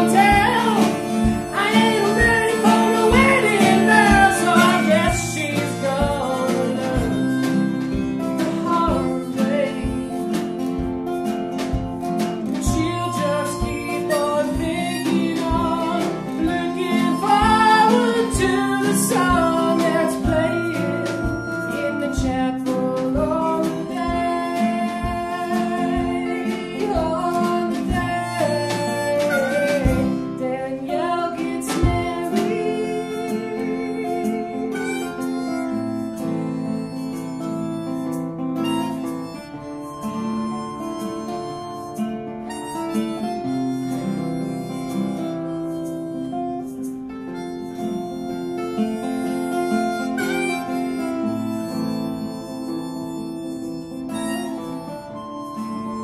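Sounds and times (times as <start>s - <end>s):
drum kit beat: 0.0s - 56.0s
harmonica lead: 0.0s - 56.0s
strummed acoustic guitars: 0.0s - 56.0s.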